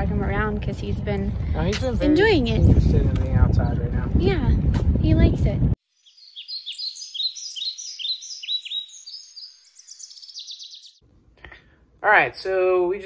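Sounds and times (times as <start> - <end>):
bird chirping and trilling: 5.8 - 11.0.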